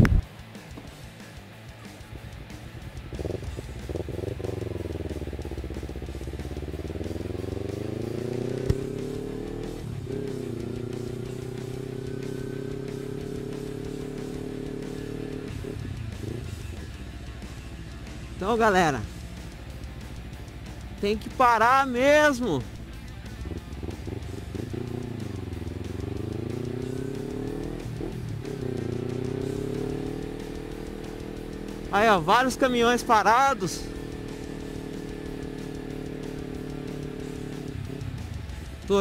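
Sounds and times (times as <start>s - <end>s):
background guitar music: 0.0s - 39.0s
motorcycle engine accelerating: 0.0s - 39.0s.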